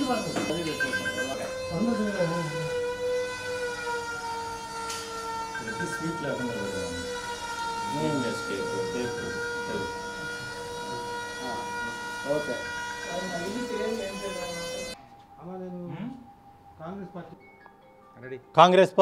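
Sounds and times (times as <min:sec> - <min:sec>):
high-pitched held tone: 0:00.0 - 0:18.2.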